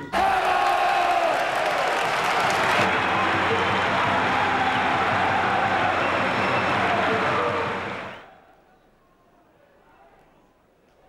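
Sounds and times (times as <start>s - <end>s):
stadium crowd cheering and clapping: 0.0s - 8.4s.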